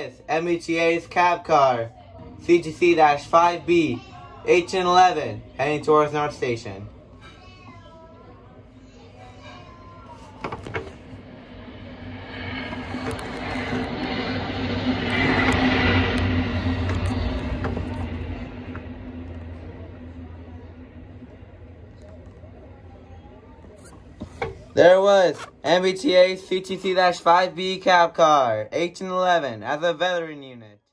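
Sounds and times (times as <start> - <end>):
train passing: 9.3 - 27.9
diesel engine drone: 10.4 - 27.4.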